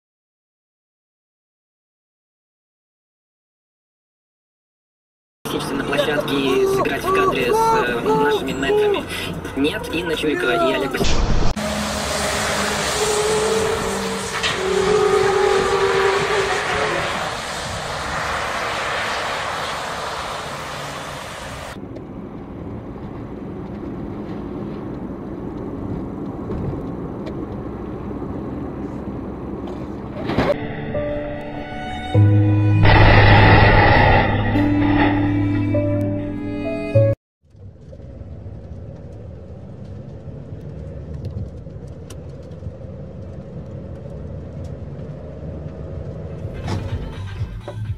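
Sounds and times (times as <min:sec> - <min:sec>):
road and traffic noise: 0:05.5 - 0:47.9
background music with sustained tones: 0:30.6 - 0:32.8.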